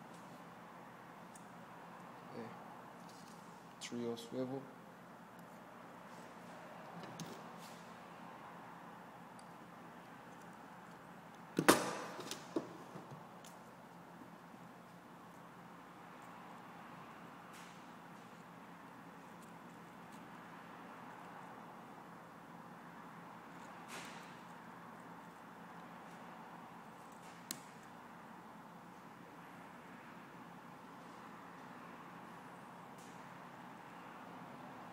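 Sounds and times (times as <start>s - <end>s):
wire snapping: 27.0s - 28.0s.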